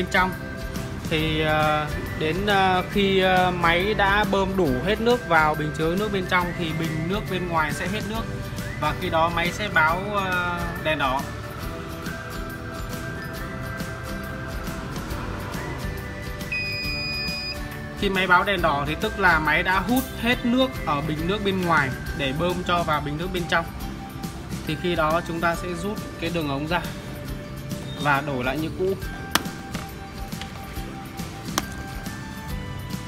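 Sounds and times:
background music: 0.0 - 33.0
high electronic beep: 16.5 - 17.6
plastic tubing handled: 29.2 - 32.2.

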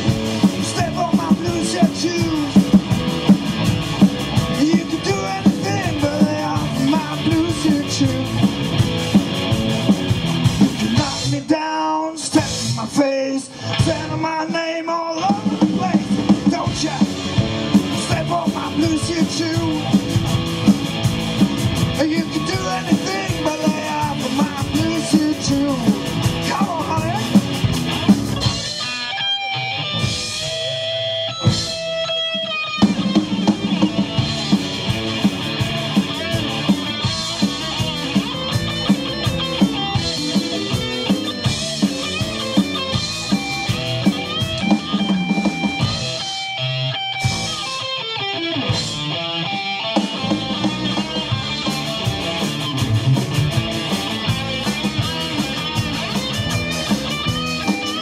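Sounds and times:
drum kit: 0.0 - 13.0, 13.6 - 58.0
electric bass: 0.0 - 58.0
electric guitars: 0.0 - 58.0.

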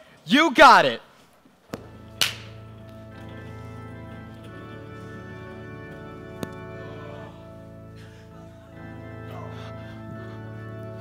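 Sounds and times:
soft band music with chords: 1.8 - 11.0.

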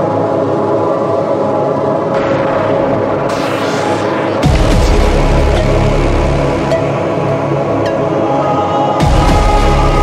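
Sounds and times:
layered synth tones: 2.2 - 8.5.

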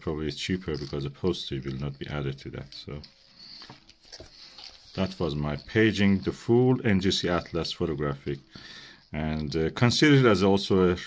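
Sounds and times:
book handling noises: 0.0 - 10.8.

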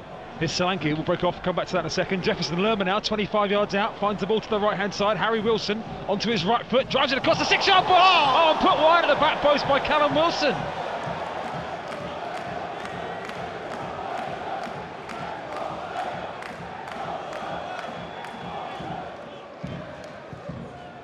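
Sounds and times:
crowd chanting and singing: 3.8 - 21.0
rhythmic clapping: 7.3 - 21.0.

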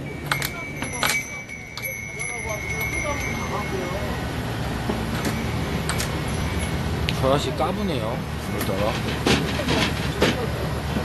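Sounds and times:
thin high tone: 0.0 - 8.9
indistinct background voices: 0.0 - 11.0.

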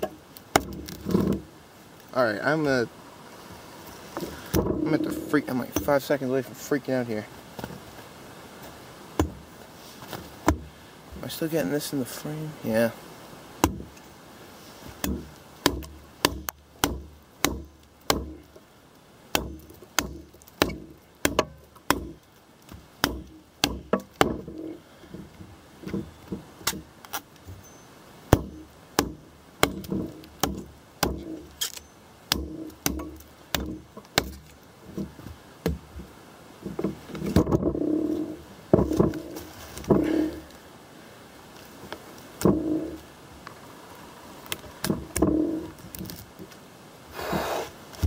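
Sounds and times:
knife chopping into log: 15.0 - 18.4, 19.3 - 22.2, 23.0 - 24.6, 28.3 - 34.5.

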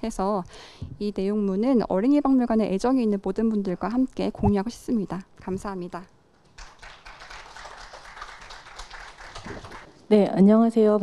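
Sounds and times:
audience clapping: 6.5 - 9.9.

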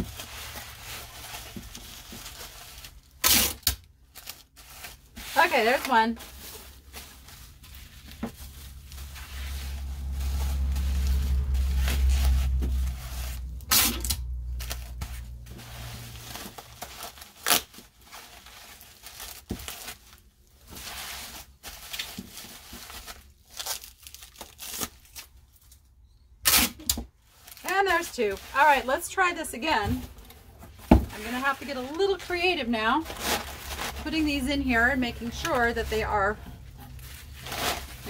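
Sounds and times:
packing tape ripping: 0.0 - 5.1, 9.0 - 15.2, 16.1 - 20.2, 21.2 - 25.4, 26.4 - 28.1, 33.1 - 34.1
bubble wrap crinkling: 0.0 - 38.0
low rumble: 6.6 - 16.6.

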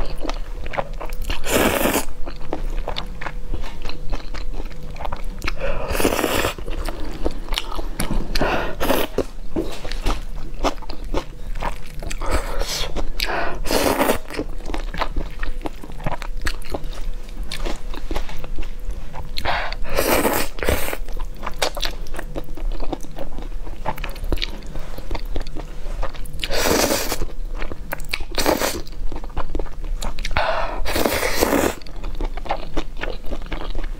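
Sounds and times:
wet chewing and smacking: 2.1 - 13.4, 20.6 - 31.1, 31.7 - 33.9
slurping noodles: 30.8 - 31.8.

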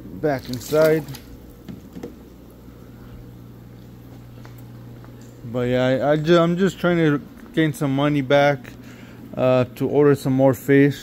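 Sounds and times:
water pump humming: 0.0 - 11.0
faint water sounds: 0.1 - 1.7.

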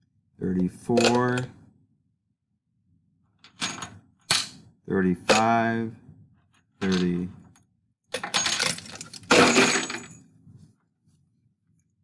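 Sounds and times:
nails clattering: 8.1 - 10.2.

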